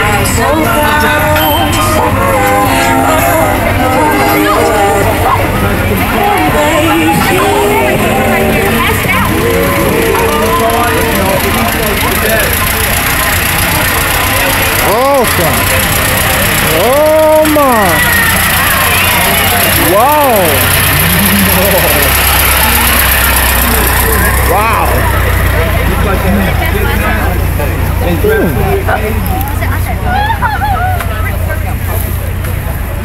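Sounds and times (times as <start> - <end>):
car engine running: 0.0 - 33.0
voices: 0.0 - 33.0.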